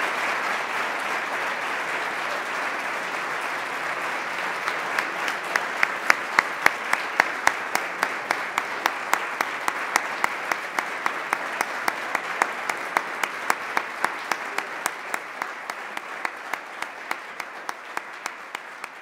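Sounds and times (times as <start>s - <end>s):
audience applauding: 0.0s - 19.0s
close clapping: 0.0s - 19.0s.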